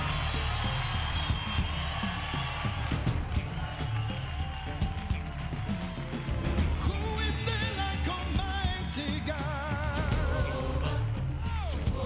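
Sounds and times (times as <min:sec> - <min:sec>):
steady drum beat: 0:00.0 - 0:12.0.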